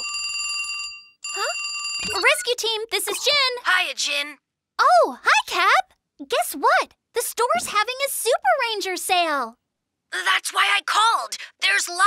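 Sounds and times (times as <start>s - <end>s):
telephone bell ringing: 0.0s - 2.4s.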